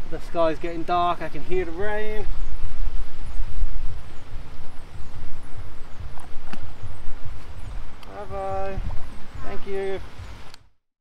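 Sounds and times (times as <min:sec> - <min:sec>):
wind buffeting microphone: 0:00.0 - 0:10.7
sharp click: 0:06.2 - 0:06.7.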